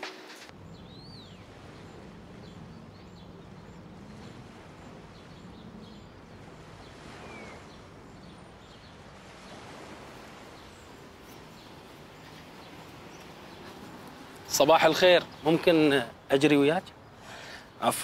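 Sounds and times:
small birds chirping: 0.5 - 18.0.

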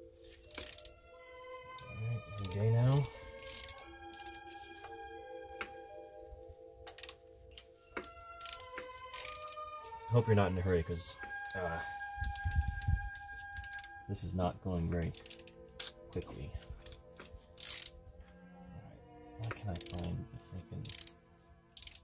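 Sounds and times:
music with held notes: 0.0 - 22.0
ratchet clicking: 0.5 - 0.9, 3.4 - 4.4, 6.8 - 9.6, 13.6 - 13.9, 15.0 - 17.0, 17.6 - 18.0, 19.8 - 20.1, 20.8 - 21.2, 21.8 - 22.0.

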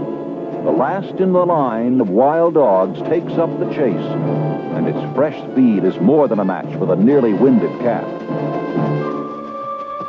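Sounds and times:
orchestral music: 0.0 - 10.0
timpani: 0.0 - 10.0.

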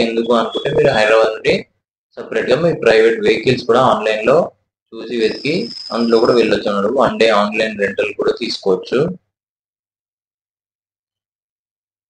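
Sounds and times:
high steady tone: 0.0 - 1.4, 5.0 - 7.9
person narrating: 0.0 - 1.6.

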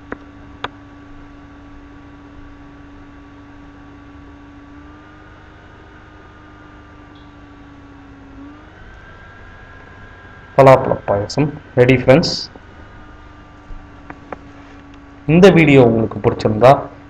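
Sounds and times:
electrical appliance hum: 0.0 - 17.0
faint high whine: 0.0 - 17.0.

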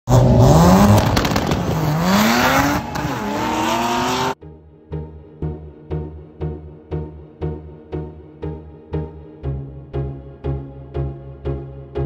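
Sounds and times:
drag racing cars accelerating: 0.1 - 4.4.

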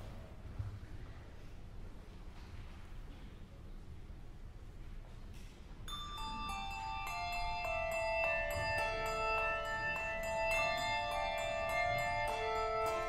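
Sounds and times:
handbell choir playing: 5.9 - 13.0.

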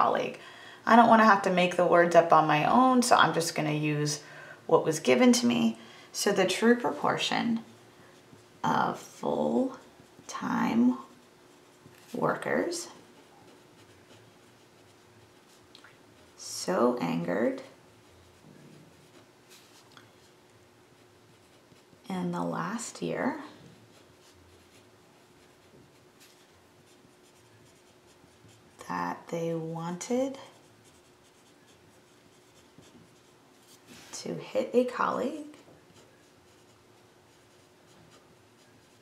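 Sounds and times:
pen scratching on paper: 9.0 - 15.6, 23.8 - 28.9, 30.4 - 33.4, 35.9 - 39.0.

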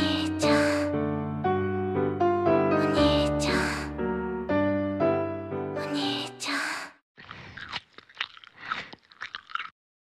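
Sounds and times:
chewing and crunching: 7.2 - 9.8.

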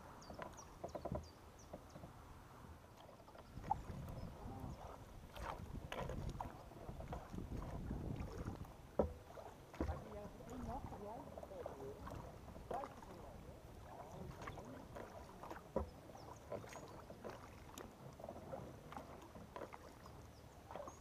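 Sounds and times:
paddle splashing and dripping: 0.0 - 21.0.

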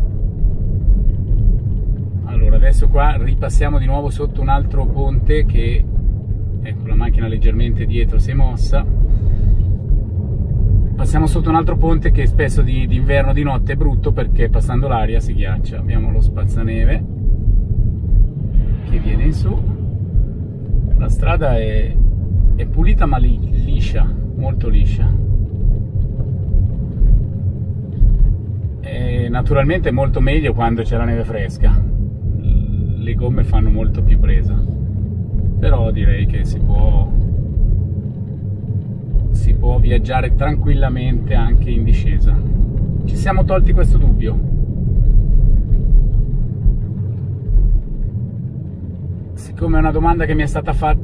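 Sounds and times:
tyre and road noise rumble: 0.0 - 51.0.

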